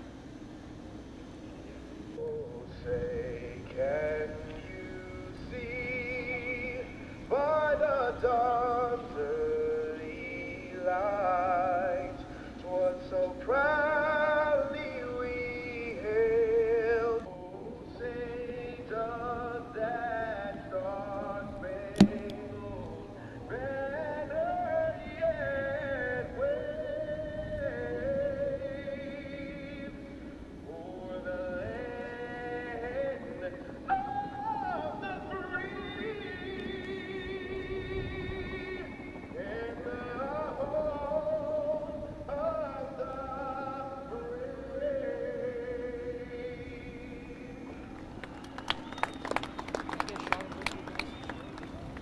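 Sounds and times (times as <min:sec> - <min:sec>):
low background rumble: 0:00.0 - 0:52.0
person singing slow melody: 0:02.2 - 0:49.0
crowd clapping and applause: 0:48.0 - 0:52.0.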